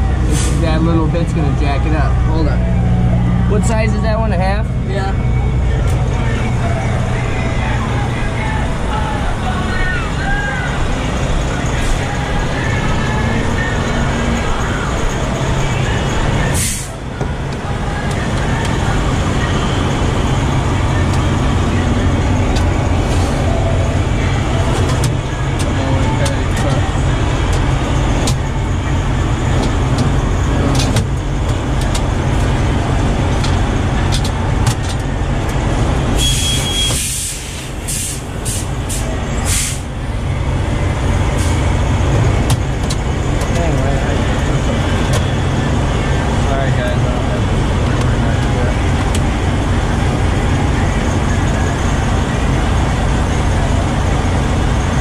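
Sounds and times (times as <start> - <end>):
diesel truck engine idling: 0.0 - 55.0.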